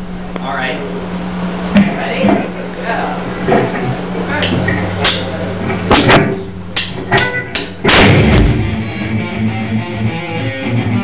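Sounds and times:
drum kit hits: 4.4 - 9.5
cymbal crashes: 7.1 - 8.9.

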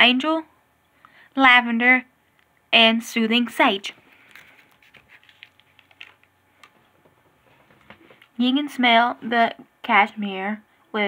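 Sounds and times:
plastic packaging crinkling: 4.0 - 8.4.

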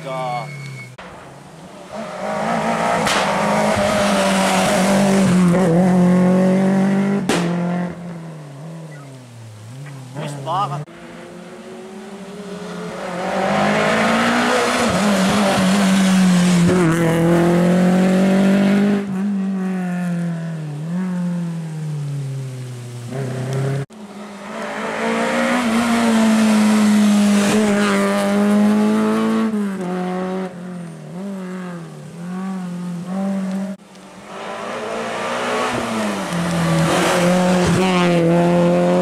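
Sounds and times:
rally car engines at full throttle: 0.0 - 22.1, 23.0 - 39.0.

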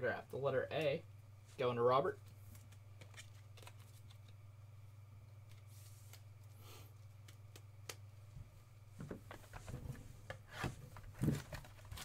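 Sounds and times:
steady low hum: 0.0 - 12.0
trading cards being handled: 2.2 - 4.4.

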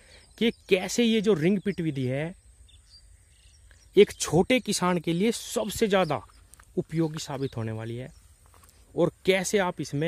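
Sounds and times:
faint bird chirps: 0.0 - 10.0
thin steady high hiss: 0.0 - 10.0
man's voice: 0.4 - 2.4, 4.0 - 8.1, 8.9 - 10.0.

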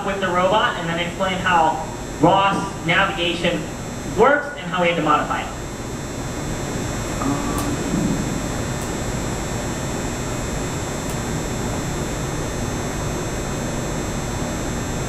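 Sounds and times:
machine hum and hiss: 0.0 - 15.0.

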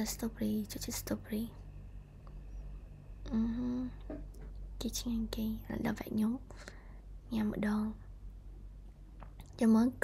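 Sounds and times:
woman speaking softly: 0.0 - 1.6, 4.8 - 6.5, 7.3 - 8.1
steady low hum: 0.0 - 10.0.

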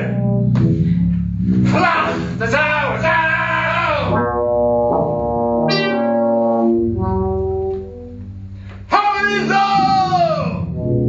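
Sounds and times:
low drone: 0.0 - 8.9.

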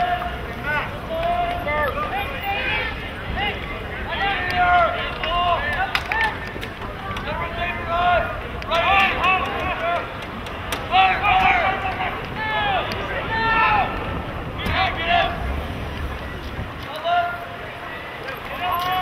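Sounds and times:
voices shouting calls: 0.0 - 19.0
lacrosse sticks clacking: 4.4 - 7.7, 8.6 - 13.1.

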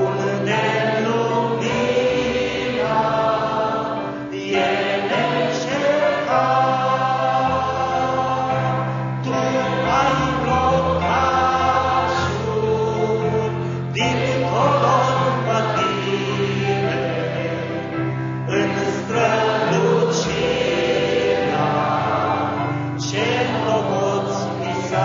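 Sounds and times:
group singing a hymn: 0.0 - 25.0.

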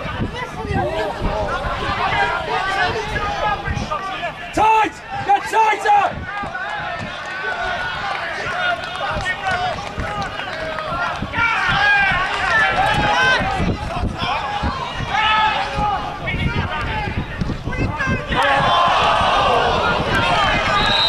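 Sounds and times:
voices shouting and calling: 0.0 - 21.0.

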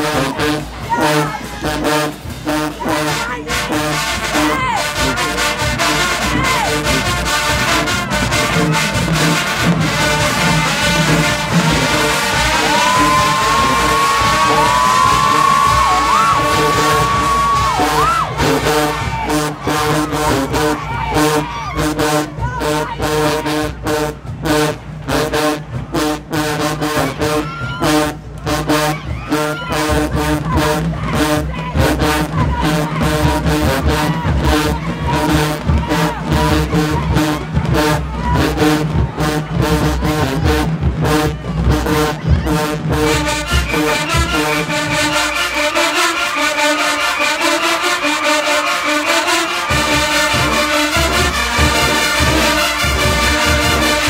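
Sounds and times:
marching band playing: 0.0 - 54.0.

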